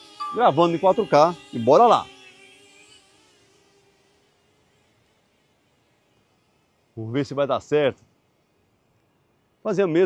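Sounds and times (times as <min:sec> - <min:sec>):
drone propellers buzzing: 0:00.0 - 0:10.0.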